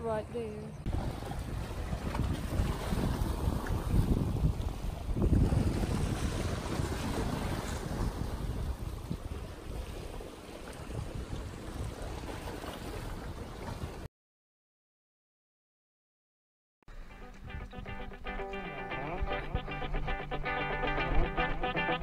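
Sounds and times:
wind buffeting microphone: 0:00.0 - 0:14.0
small waves washing on shore: 0:00.9 - 0:14.1.

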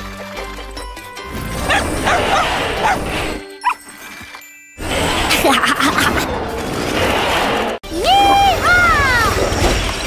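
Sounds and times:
background music: 0:00.0 - 0:06.7
cartoon dog yipping and whining: 0:01.6 - 0:03.9.

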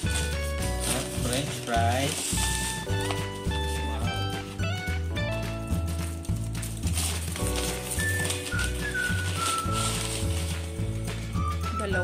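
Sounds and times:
paper bag crinkling: 0:00.0 - 0:04.5, 0:05.9 - 0:11.7
background music: 0:00.0 - 0:12.0.

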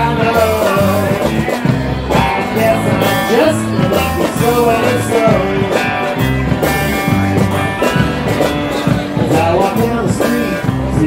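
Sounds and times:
bass and drums: 0:00.0 - 0:11.0
electric guitar lead: 0:00.0 - 0:11.0.

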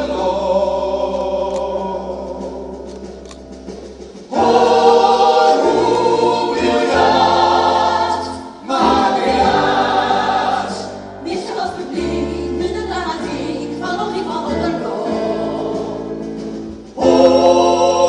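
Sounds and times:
group of voices singing chords: 0:00.0 - 0:12.6, 0:14.5 - 0:18.0.

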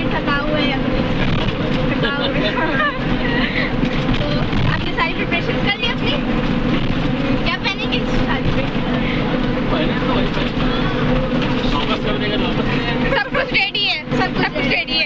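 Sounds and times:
bus engine droning: 0:00.0 - 0:15.0
voices talking: 0:07.2 - 0:15.0.

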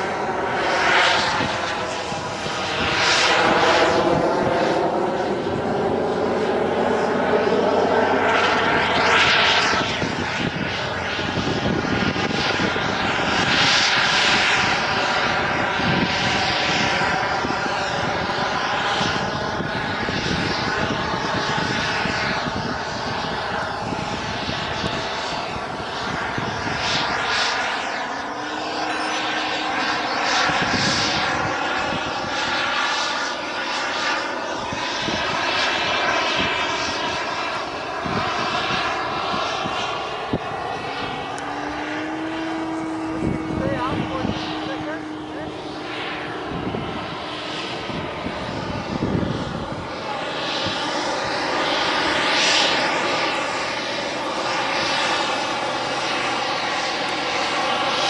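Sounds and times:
model jet engine whine: 0:00.0 - 0:58.0.

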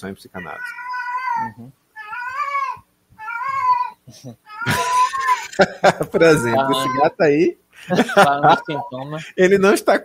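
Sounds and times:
cat meowing: 0:00.4 - 0:05.6, 0:06.3 - 0:07.2, 0:08.4 - 0:09.0.

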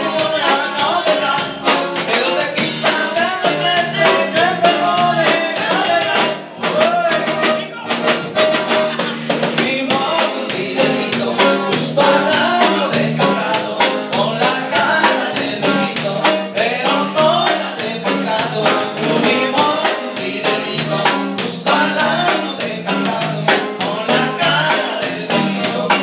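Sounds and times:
band playing with accordion: 0:00.0 - 0:26.0
men singing: 0:00.0 - 0:26.0.

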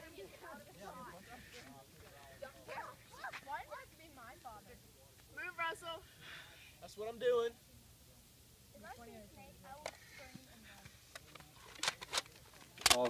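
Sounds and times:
faint voices: 0:00.0 - 0:06.8.

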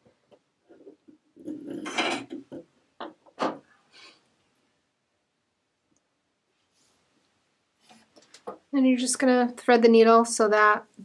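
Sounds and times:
rustle of yarn: 0:06.5 - 0:08.2.

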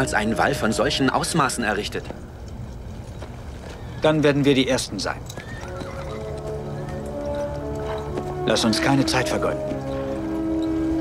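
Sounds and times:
film music with held notes: 0:00.0 - 0:11.0
horse whinnying: 0:03.5 - 0:08.2.

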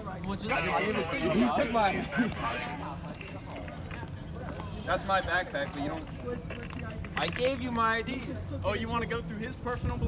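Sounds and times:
footsteps on brick paving: 0:00.0 - 0:08.6
faint voices: 0:00.0 - 0:10.0.

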